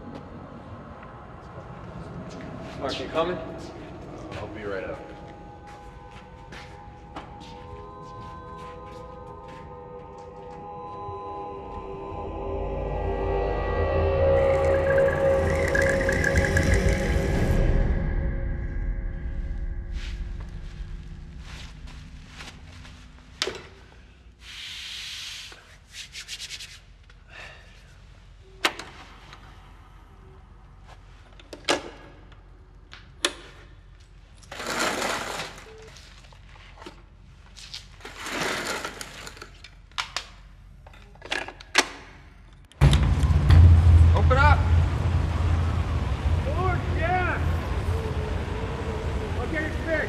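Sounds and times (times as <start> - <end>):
blizzard wind: 0.0 - 24.4, 42.8 - 50.0
low rumble: 9.7 - 24.4, 42.8 - 50.0.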